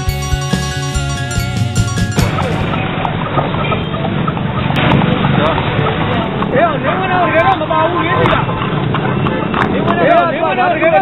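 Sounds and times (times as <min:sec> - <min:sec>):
cart rumbling: 0:00.0 - 0:10.2.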